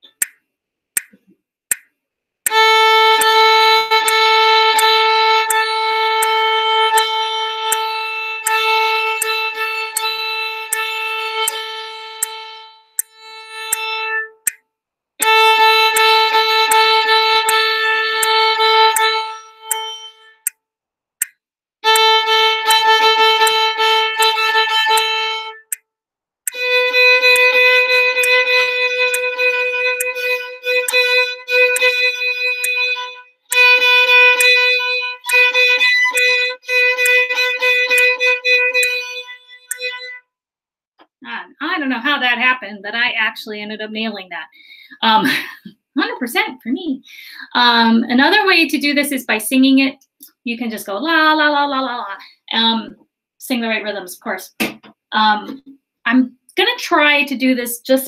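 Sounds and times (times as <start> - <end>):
metronome ticking: 0.0 - 0.4, 1.0 - 1.9, 2.5 - 14.6, 15.2 - 20.6, 21.2 - 25.8, 26.5 - 40.2
violin bowing repeated note: 2.5 - 14.6, 15.2 - 20.5, 21.8 - 25.8, 26.5 - 40.2.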